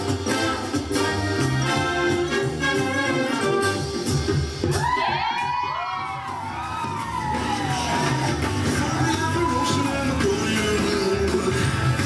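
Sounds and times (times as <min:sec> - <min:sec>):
stage music: 0:00.0 - 0:12.0
audience cheering: 0:04.6 - 0:11.0
high-pitched woo: 0:04.6 - 0:11.6.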